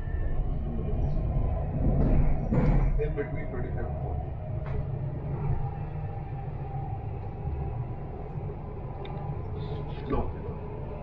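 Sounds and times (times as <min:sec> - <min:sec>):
train rumble inside carriage: 0:00.0 - 0:11.0.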